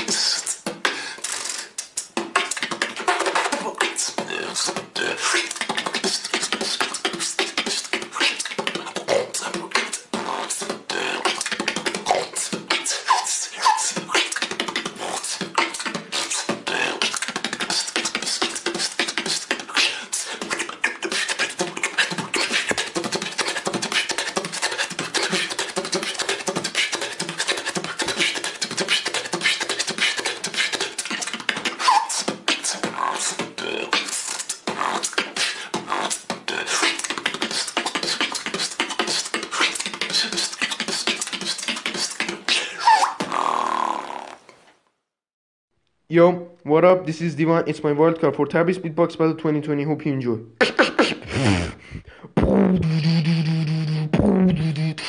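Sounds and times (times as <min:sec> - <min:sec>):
beatboxing: 0:00.0 - 0:44.5, 0:50.5 - 0:55.0
pitched vocal notes: 0:00.0 - 0:44.5, 0:46.1 - 0:55.0.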